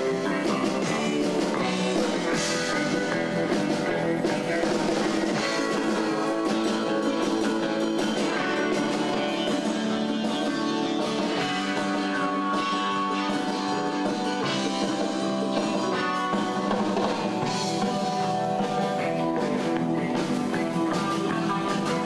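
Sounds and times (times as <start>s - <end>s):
bongos: 0.0s - 22.0s
drum kit: 0.0s - 22.0s
electric guitars: 0.0s - 22.0s.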